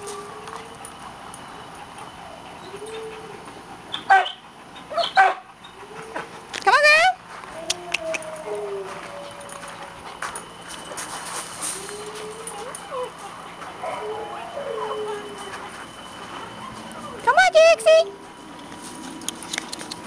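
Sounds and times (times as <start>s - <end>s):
dog whimpering: 0.0s - 10.2s, 11.6s - 18.3s
dog yelping: 2.1s - 6.3s, 11.8s - 18.0s
dog barking: 4.1s - 4.4s, 5.0s - 5.4s.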